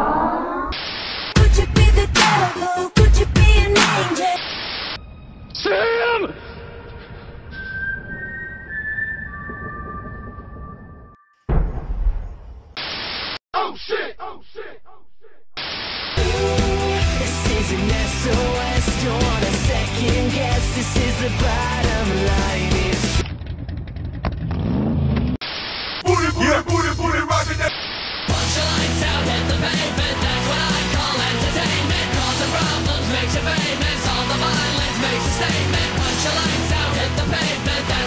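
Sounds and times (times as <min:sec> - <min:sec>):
pop music: 0:01.4 - 0:04.4, 0:16.2 - 0:23.2, 0:28.3 - 0:38.0.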